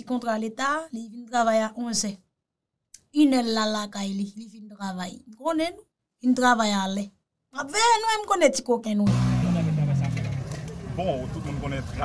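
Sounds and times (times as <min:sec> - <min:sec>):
outdoor noise: 0:02.9 - 0:12.0
engine running: 0:09.1 - 0:12.0.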